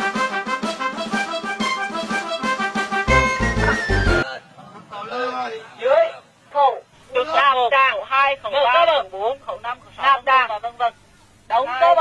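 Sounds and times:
man narrating: 6.6 - 12.0.

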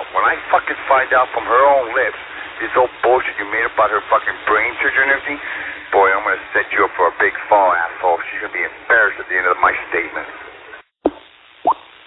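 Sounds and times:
man talking over radio: 0.0 - 10.4
faint radio hiss: 0.0 - 12.0.

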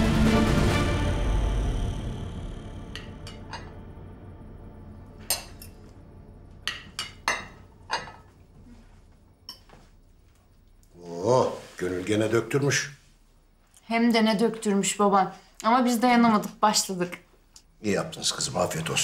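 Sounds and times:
background music: 0.0 - 8.3
cutlery clinking on plates: 6.7 - 8.4, 9.4 - 9.8.

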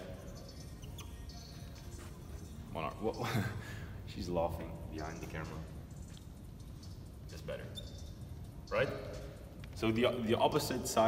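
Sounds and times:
marker squeaking on whiteboard: 0.0 - 2.7, 5.0 - 9.5
faint background music: 0.0 - 11.0.

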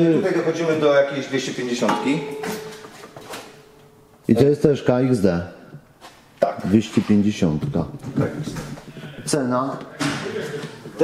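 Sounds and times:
faint steady hum: 0.0 - 6.6.

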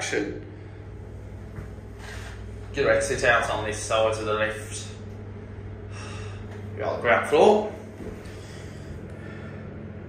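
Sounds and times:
low lift hum: 0.0 - 10.0.

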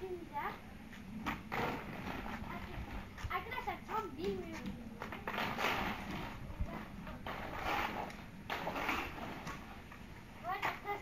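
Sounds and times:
skate wheels rolling on concrete: 0.0 - 11.0.

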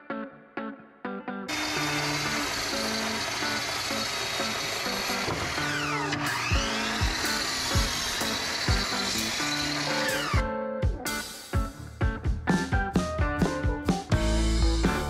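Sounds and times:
miter saw cutting wood: 1.5 - 10.4
background music with drum beat: 6.5 - 15.0.

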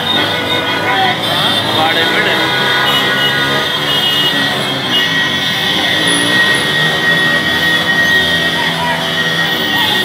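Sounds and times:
motorcycle engines revving: 0.0 - 10.0.

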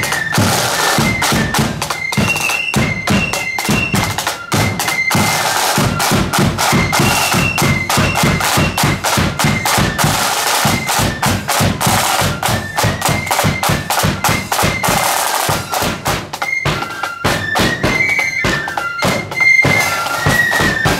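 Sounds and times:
high flutes: 0.0 - 20.9
side drums beating: 0.0 - 20.9.

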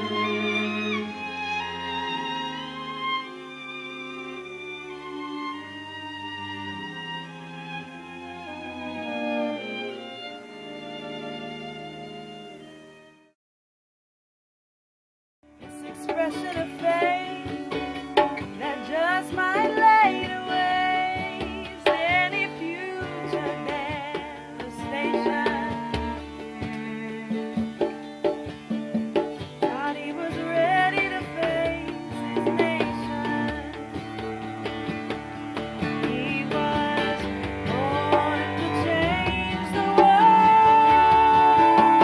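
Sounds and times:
cello: 0.0 - 13.4, 15.6 - 42.0
acoustic guitar: 15.5 - 42.0
hand drum: 15.6 - 42.0
woman singing with vibrato: 15.7 - 17.8, 18.6 - 26.2, 29.7 - 34.1, 35.8 - 42.0.

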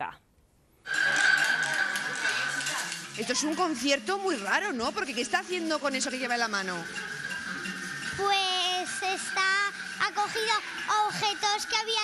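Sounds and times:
homemade instrument high note: 0.9 - 3.4
children's voices: 8.1 - 12.0.

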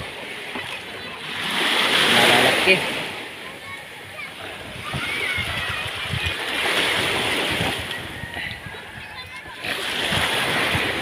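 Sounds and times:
water splashing around boat: 0.0 - 11.0
faint voices: 0.4 - 11.0.

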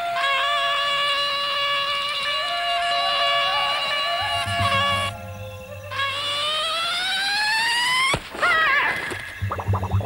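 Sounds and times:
low hum: 9.4 - 10.0
rising whistle-like tone: 9.4 - 10.0
wavering warble: 9.4 - 10.0.

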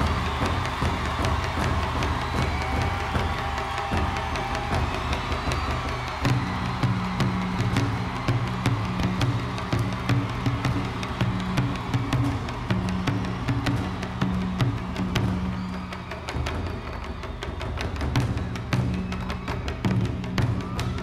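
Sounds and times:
crowd cheering: 0.0 - 21.0
taiko drums: 0.0 - 21.0.

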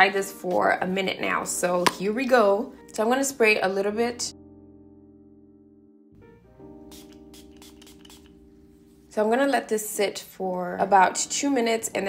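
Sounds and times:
soft keyboard music: 0.0 - 12.0
quick short spray hisses: 6.9 - 8.4.

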